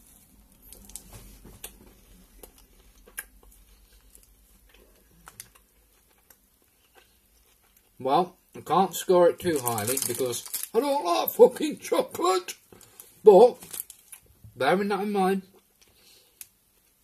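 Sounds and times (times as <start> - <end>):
chewing crunchy chocolate bar: 0.7 - 8.0.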